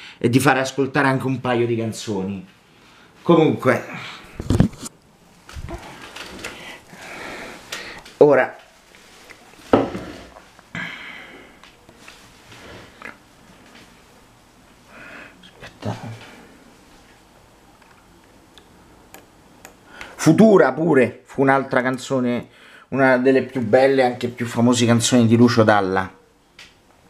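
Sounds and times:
low room hiss: 0.0s - 27.0s
camera handling rustling and scraping: 4.4s - 6.7s.

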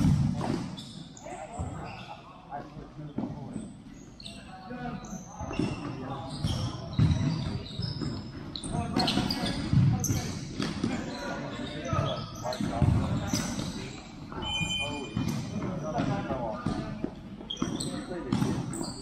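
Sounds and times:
ball kicked and bouncing on court: 0.0s - 0.9s, 5.4s - 19.0s
shoes squeaking on floor: 0.1s - 19.0s.

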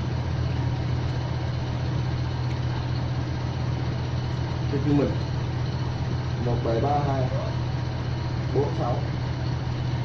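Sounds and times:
electric fan humming and whirring: 0.0s - 10.0s.

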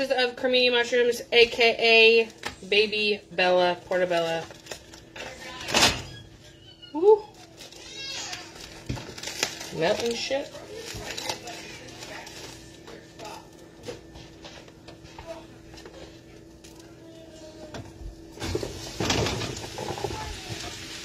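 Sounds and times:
plastic package rustling: 3.9s - 5.7s, 7.3s - 14.1s
mushrooms sizzling in hot oil: 18.4s - 21.0s.

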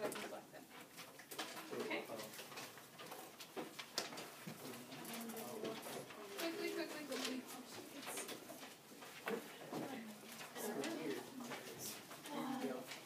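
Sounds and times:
papers rustling: 0.0s - 13.0s.

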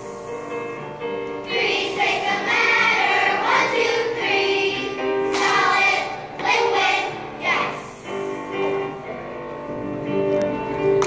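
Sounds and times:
children's choir singing: 1.4s - 9.0s.

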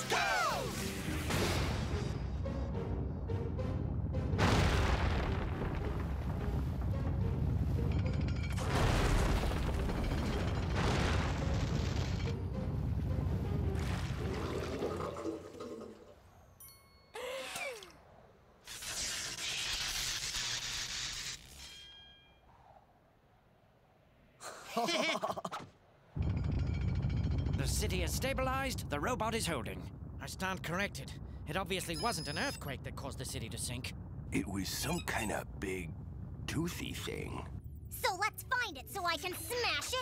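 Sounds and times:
dramatic music: 0.6s - 9.3s
heavy rumbling: 2.7s - 15.0s, 26.1s - 39.0s.

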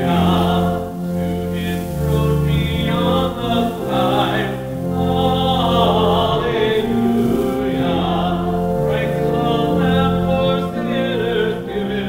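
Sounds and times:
choir singing hymn: 0.0s - 12.0s
held accompaniment notes: 0.0s - 12.0s.

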